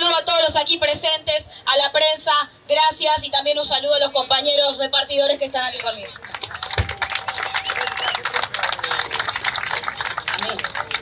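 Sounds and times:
crowd applauding: 5.8 - 11.0.

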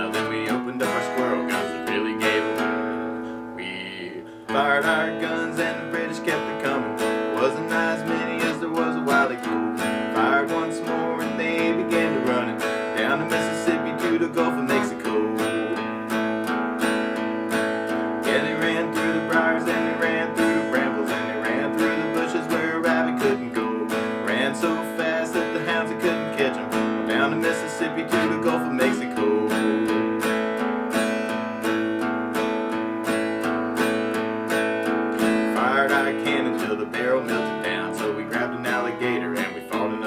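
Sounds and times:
acoustic guitar strumming: 0.0 - 40.0.

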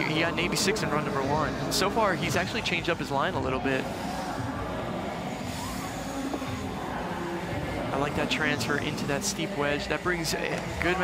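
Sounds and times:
open arena ambience: 0.0 - 11.0.

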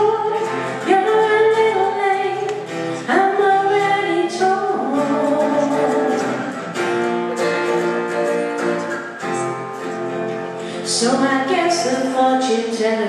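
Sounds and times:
acoustic guitars strumming: 0.0 - 13.0
people singing: 3.1 - 9.2.

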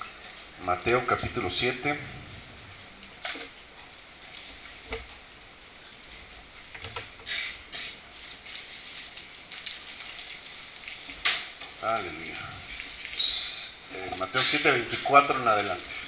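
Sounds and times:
pages rustling: 8.1 - 13.4, 14.0 - 16.0.

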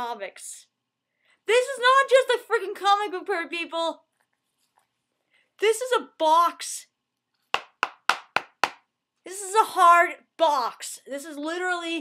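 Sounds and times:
knocks on cardboard box: 7.6 - 8.8.

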